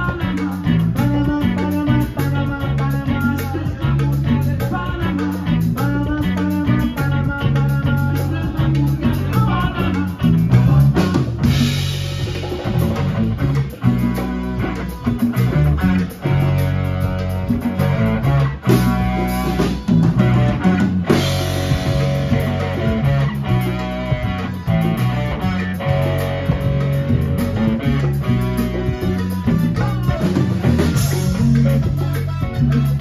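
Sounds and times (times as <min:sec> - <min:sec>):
congas and timbales: 0:00.0 - 0:33.0
drum kit: 0:00.0 - 0:33.0
electric bass: 0:00.0 - 0:33.0
electric guitar: 0:00.0 - 0:33.0.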